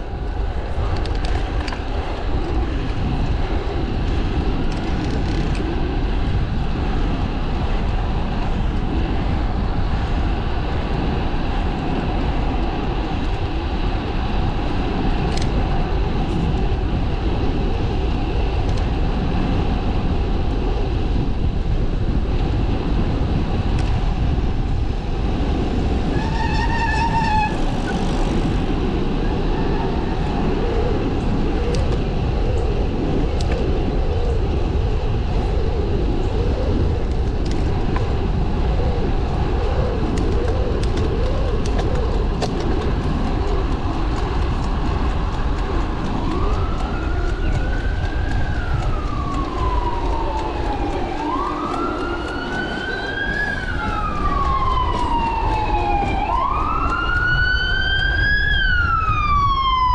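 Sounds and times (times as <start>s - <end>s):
bicycle rolling noise: 0.0s - 59.9s
wind rumble: 0.0s - 59.9s.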